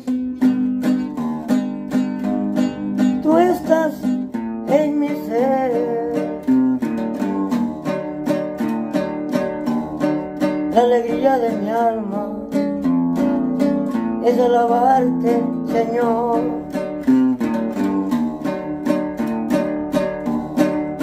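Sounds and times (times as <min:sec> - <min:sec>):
acoustic guitar strumming: 0:00.0 - 0:21.0
man singing a hymn: 0:03.2 - 0:06.6, 0:10.7 - 0:12.6, 0:14.2 - 0:16.8.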